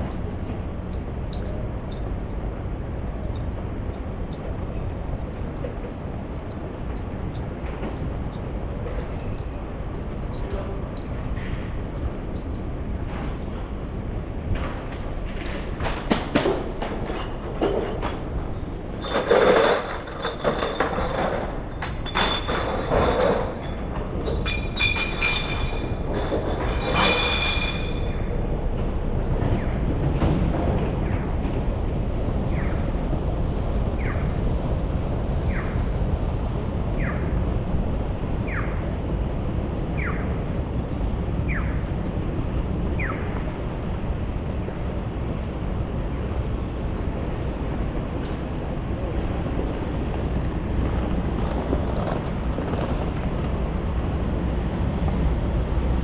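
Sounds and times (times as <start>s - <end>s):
city traffic rumble: 0.0s - 56.0s
metallic clanks and clinks: 19.0s - 28.2s.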